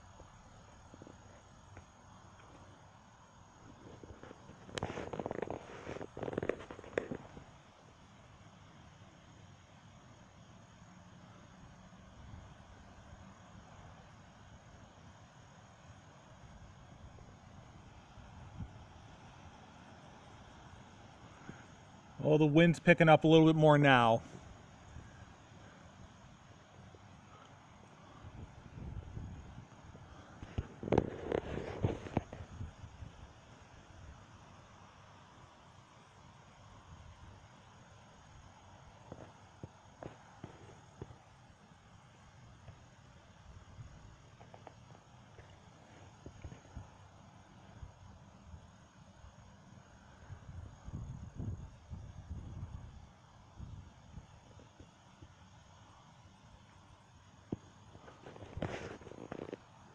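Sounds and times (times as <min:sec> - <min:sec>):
wind gusting across microphone: 0:28.0 - 0:33.4, 0:50.3 - 0:53.0.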